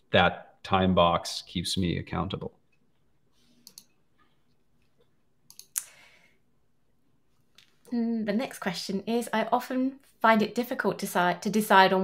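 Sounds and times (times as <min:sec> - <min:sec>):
faint clicks: 0:03.6 - 0:04.0, 0:04.9 - 0:06.0.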